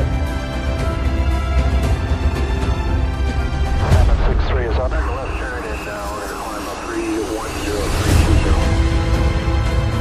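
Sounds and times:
jet engine rumble: 0:03.7 - 0:08.6
jet rush: 0:03.7 - 0:08.8.

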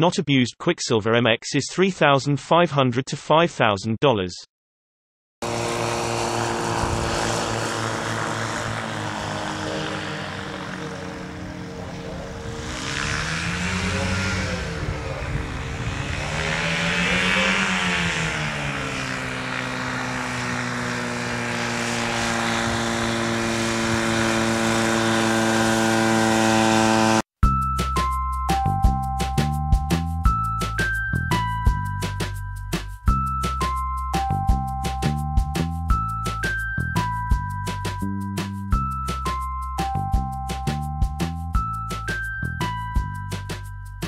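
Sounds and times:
two-stroke engine and propeller: 0:05.4 - 0:27.3.

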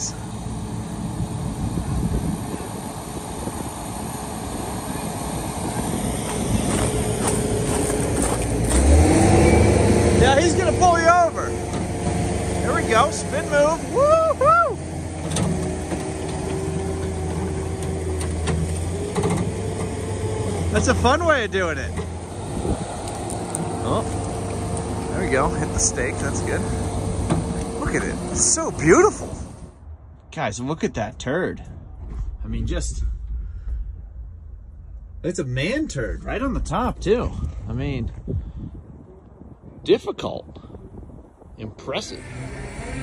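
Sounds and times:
diesel engine under load: 0:00.0 - 0:29.9, 0:42.0 - 0:43.0.

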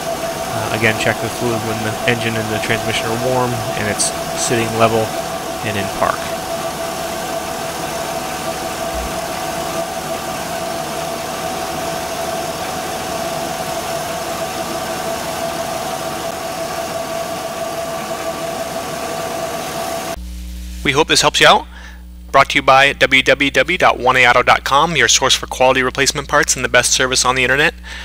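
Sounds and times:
truck engine idling: 0:00.0 - 0:20.2
high engine whine: 0:00.0 - 0:22.3.

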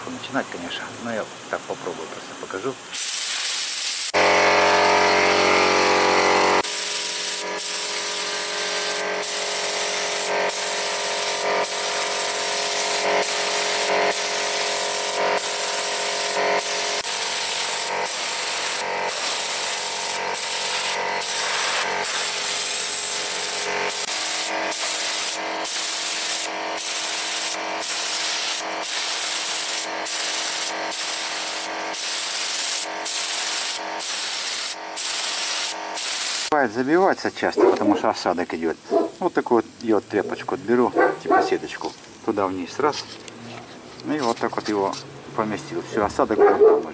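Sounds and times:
air compressor humming: 0:02.8 - 0:36.6, 0:40.2 - 0:41.7
paint spray gun hissing: 0:02.9 - 0:36.6.

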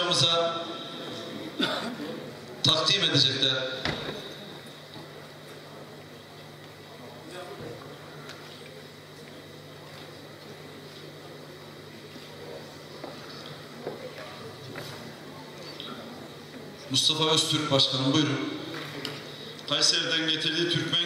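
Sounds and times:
steady low hum: 0:00.0 - 0:21.0
faint murmuring voices: 0:03.6 - 0:17.0.

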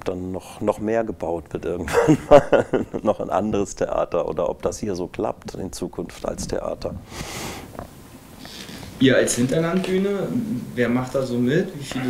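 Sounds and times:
person breathing through nose: 0:07.0 - 0:07.8, 0:08.4 - 0:09.0.

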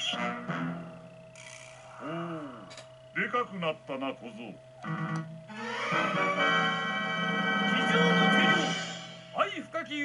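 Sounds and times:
drawn-out voiced hoh: 0:01.9 - 0:02.8.

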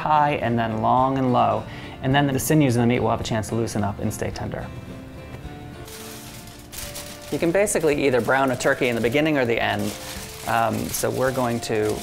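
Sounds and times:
background music: 0:00.0 - 0:12.0
aluminium foil crinkling: 0:05.8 - 0:12.0.

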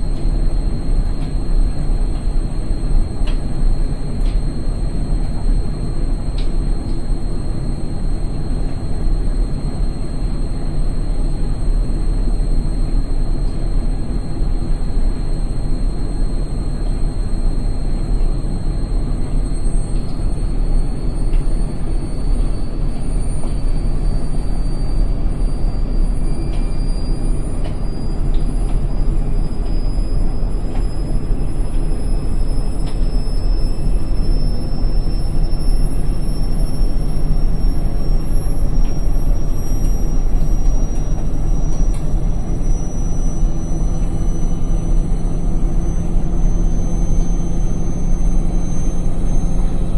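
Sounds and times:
high motor whine rising in pitch: 0:00.0 - 0:49.9.

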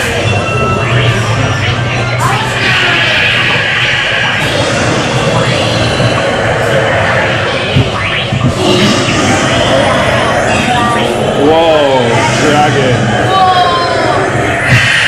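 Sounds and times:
indistinct voices: 0:00.0 - 0:15.0
ride soundtrack music: 0:00.0 - 0:15.0
roller coaster rumbling on track: 0:00.0 - 0:15.0.

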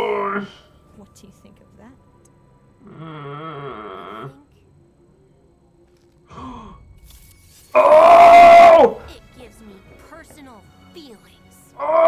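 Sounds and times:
person sighing: 0:06.3 - 0:07.0.

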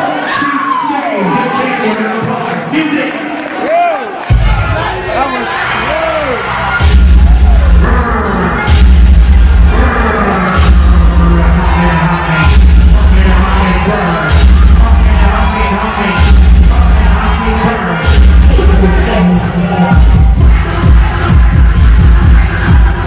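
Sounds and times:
crowd shouting: 0:00.0 - 0:23.0
vogue beat over sound system: 0:04.2 - 0:23.0.

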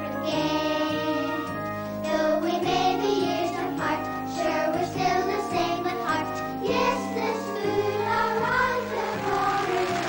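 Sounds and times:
choir singing: 0:02.0 - 0:10.0.

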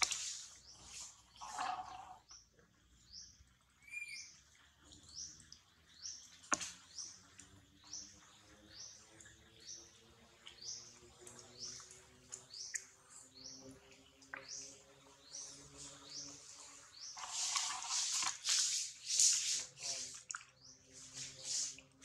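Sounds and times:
bird chirping: 0:00.0 - 0:21.9.

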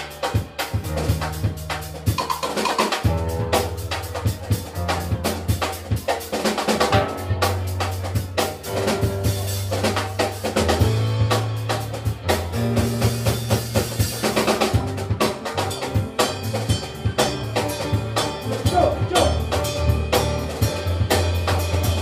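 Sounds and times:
walking electric bass line: 0:00.0 - 0:02.2, 0:03.0 - 0:22.0
rapid drum and percussion strokes: 0:00.0 - 0:22.0.

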